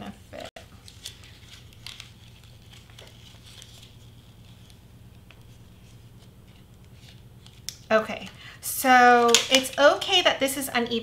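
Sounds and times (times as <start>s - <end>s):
steady low hum: 0.0s - 11.0s
paper wrapper rustling: 0.6s - 7.9s.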